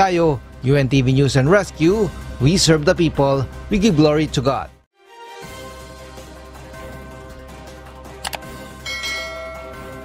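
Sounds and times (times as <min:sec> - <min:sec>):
background music: 0:00.0 - 0:10.0
mouse clicks: 0:08.2 - 0:08.4
notification bell chime: 0:08.9 - 0:10.0.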